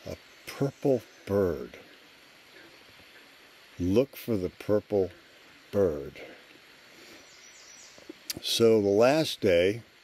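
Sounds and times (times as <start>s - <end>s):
faint outdoor hiss: 0.0s - 10.0s
distant bird chirps: 6.2s - 9.1s.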